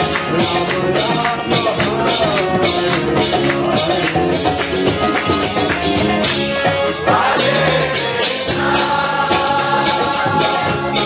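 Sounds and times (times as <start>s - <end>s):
hand cymbals beating: 0.0s - 11.0s
group singing a devotional chant: 7.0s - 11.0s.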